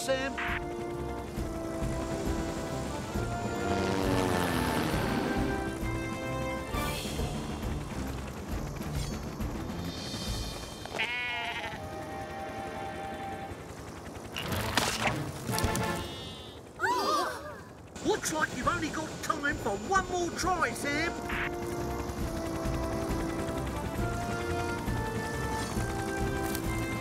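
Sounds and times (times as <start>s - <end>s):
cartoon music: 0.0s - 0.8s
lamb bleating: 11.0s - 11.8s.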